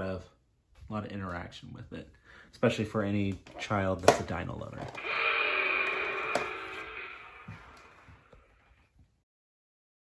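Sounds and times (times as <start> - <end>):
electronic toy dinosaur roar: 5.0 - 8.6.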